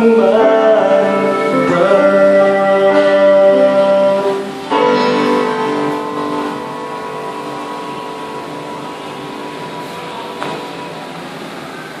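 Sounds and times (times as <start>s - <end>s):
karaoke backing track chord: 0.0s - 11.2s
room and speaker hiss: 0.0s - 12.0s.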